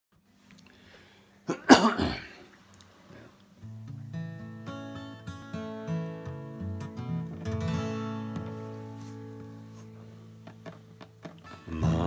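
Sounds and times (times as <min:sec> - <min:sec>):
man coughing: 0:01.5 - 0:02.5.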